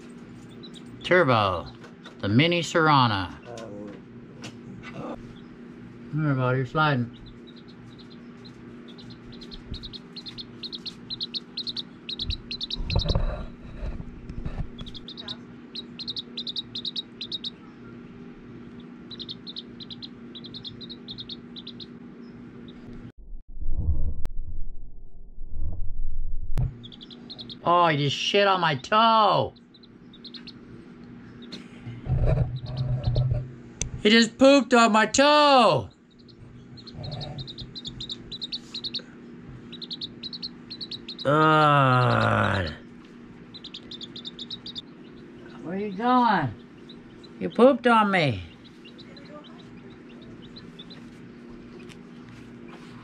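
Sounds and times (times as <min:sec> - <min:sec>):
chick peeping: 0:00.0 - 0:01.9, 0:06.8 - 0:23.0, 0:26.7 - 0:33.4, 0:35.5 - 0:53.0.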